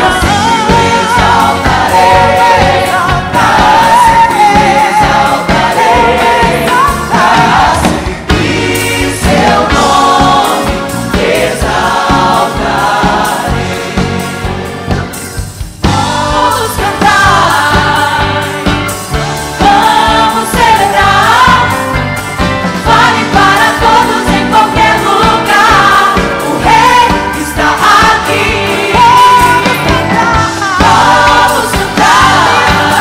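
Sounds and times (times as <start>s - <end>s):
woman singing lead: 0.0s - 10.2s, 15.8s - 18.7s, 19.6s - 22.0s, 22.9s - 33.0s
gospel choir singing a hymn: 0.0s - 33.0s
instrumental backing music: 0.0s - 33.0s.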